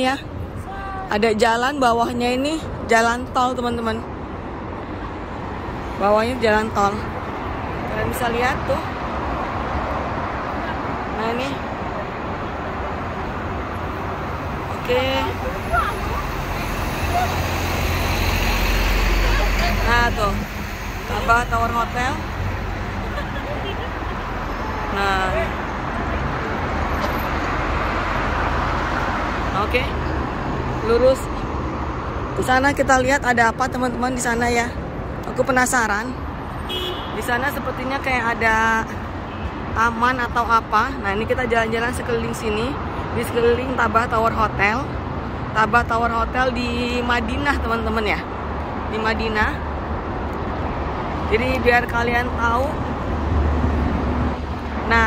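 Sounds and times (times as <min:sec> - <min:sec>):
highway traffic rumble: 0:00.0 - 0:55.0.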